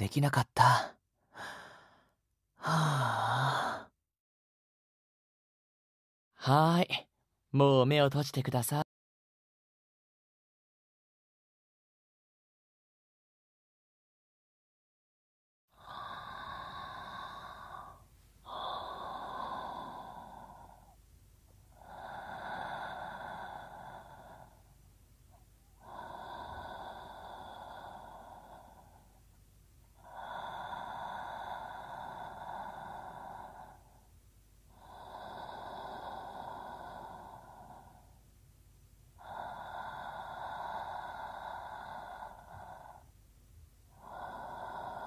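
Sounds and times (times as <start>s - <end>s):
man breathing slowly: 1.3s - 4.0s, 15.7s - 38.4s, 39.2s - 43.2s, 43.8s - 45.0s.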